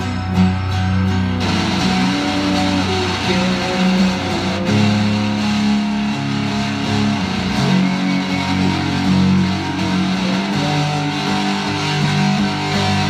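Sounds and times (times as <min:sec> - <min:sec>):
electric guitar held low notes: 0:00.0 - 0:13.0
sliding high guitar line: 0:00.0 - 0:13.0.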